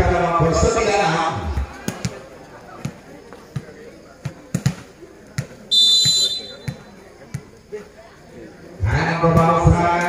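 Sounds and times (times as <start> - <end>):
referee's whistle blast: 5.7 - 6.8.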